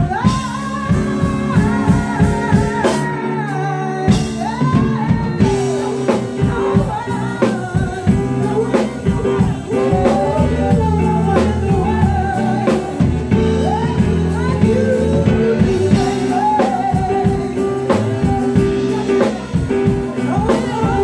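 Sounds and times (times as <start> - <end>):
drum kit beat: 0.0 - 21.0
electric bass notes: 0.0 - 21.0
woman singing: 0.0 - 21.0.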